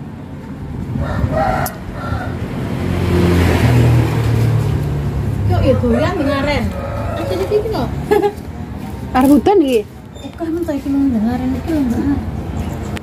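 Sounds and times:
vehicle passing: 0.0s - 13.0s.

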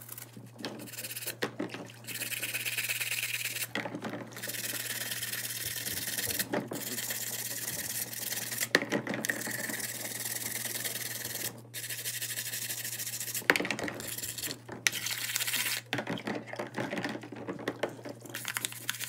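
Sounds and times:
brush scrubbing in soapy water: 0.0s - 3.7s, 4.3s - 8.7s, 9.5s - 15.8s, 18.0s - 19.0s.

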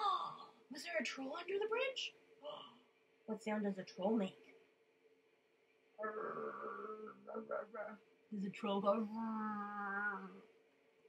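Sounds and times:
woman imitating a troll: 8.9s - 10.4s.

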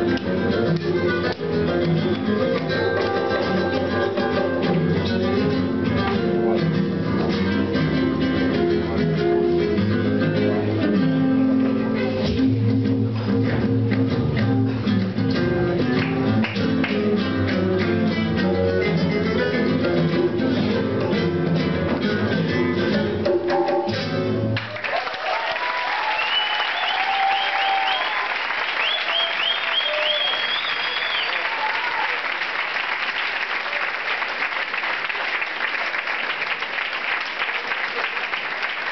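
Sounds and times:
acoustic guitars and hand drum: 0.0s - 24.7s
audience applauding: 16.0s - 17.2s, 24.6s - 38.9s
whistles and shouts: 26.1s - 31.6s.

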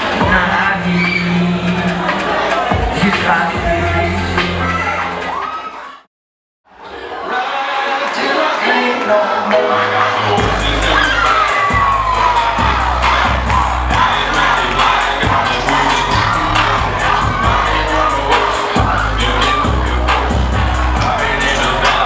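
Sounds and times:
dance music with heavy bass: 0.0s - 5.4s, 10.0s - 22.0s
audience cheering and shouting: 0.0s - 6.1s, 6.7s - 22.0s.

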